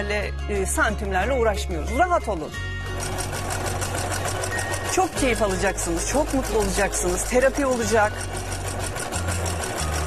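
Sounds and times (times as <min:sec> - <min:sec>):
sewing machine stitching: 0:02.8 - 0:10.0.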